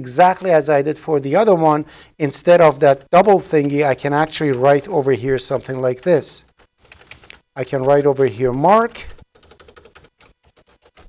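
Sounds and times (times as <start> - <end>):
computer keyboard typing: 2.9 - 11.0.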